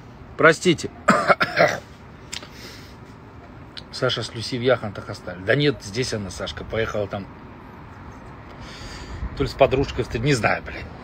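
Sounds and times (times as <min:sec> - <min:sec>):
man coughing harshly: 0:01.1 - 0:01.9.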